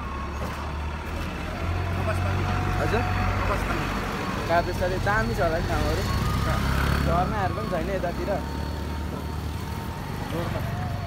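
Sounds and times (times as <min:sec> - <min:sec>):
vehicle engine rumbling: 0:00.0 - 0:11.0.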